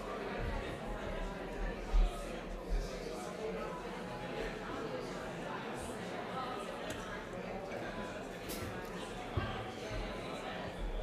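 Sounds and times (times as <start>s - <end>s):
many voices chattering: 0.0s - 11.0s.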